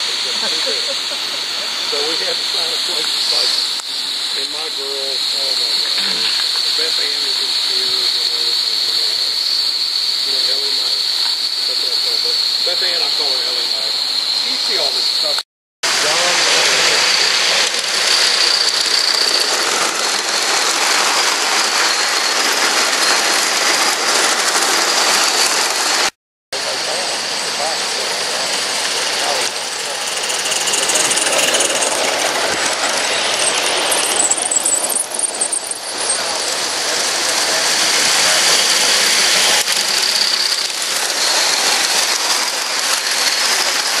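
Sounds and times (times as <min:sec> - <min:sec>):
model train rattling on rails: 0:00.0 - 0:44.0
steam locomotive passing: 0:00.0 - 0:44.0.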